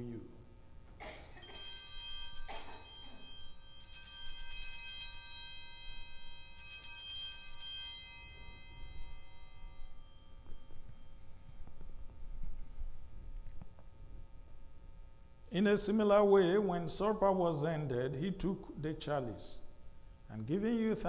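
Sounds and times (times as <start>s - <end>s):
altar bells ringing: 1.2s - 11.8s.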